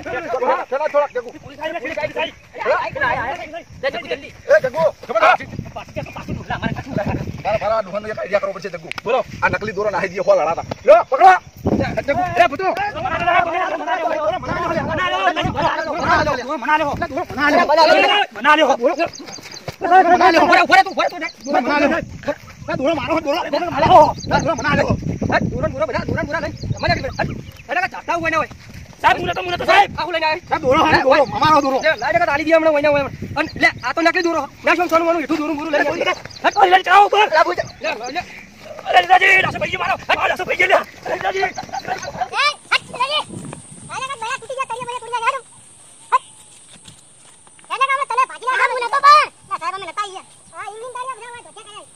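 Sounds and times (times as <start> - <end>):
men yelling and wailing: 0.0 - 46.9, 47.6 - 51.9
men talking over each other: 0.0 - 51.9.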